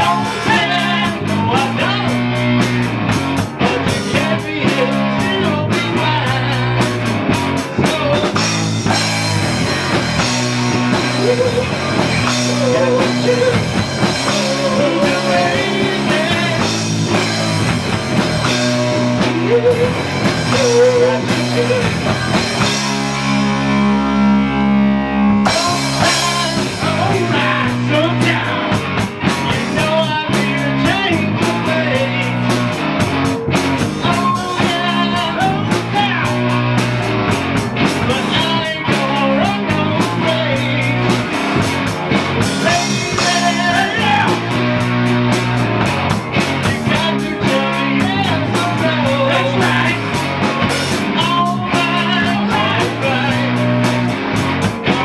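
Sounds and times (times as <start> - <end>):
drum kit: 0.0 - 24.4, 25.4 - 55.0
rock band playing: 0.0 - 55.0.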